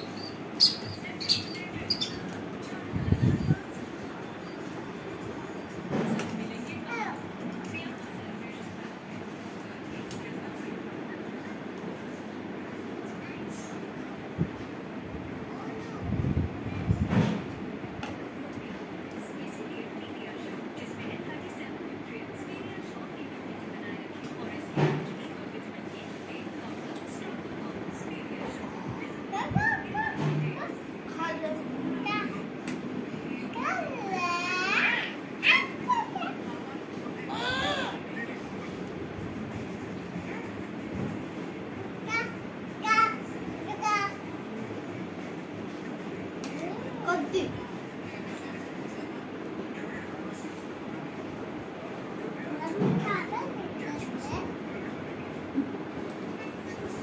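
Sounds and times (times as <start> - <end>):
steady background noise: 0.0 - 57.0.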